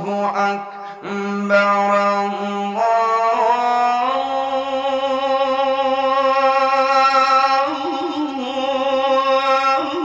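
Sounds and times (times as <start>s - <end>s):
man chanting call to prayer: 0.0s - 10.0s.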